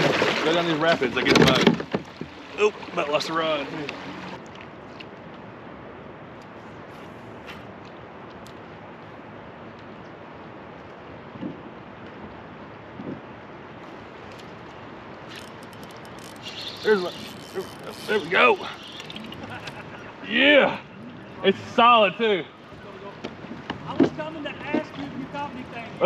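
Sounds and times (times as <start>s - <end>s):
river current rushing: 0.0s - 26.0s
wind: 0.0s - 26.0s.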